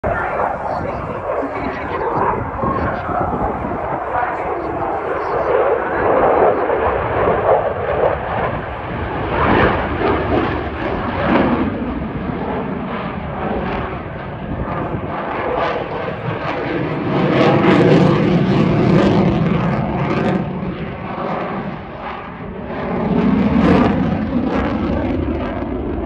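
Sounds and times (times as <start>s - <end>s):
fighter jet engine roaring: 0.0s - 26.0s.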